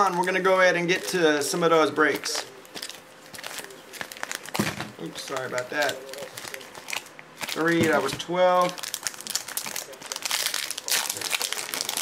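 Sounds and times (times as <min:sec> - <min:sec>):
wrapper crinkling: 0:02.0 - 0:12.0.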